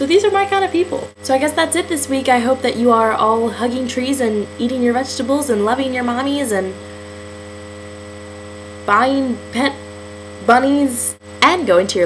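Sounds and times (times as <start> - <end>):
woman speaking: 0.0 - 6.8, 8.9 - 9.8, 10.4 - 12.0
electrical mains hum: 0.0 - 12.0.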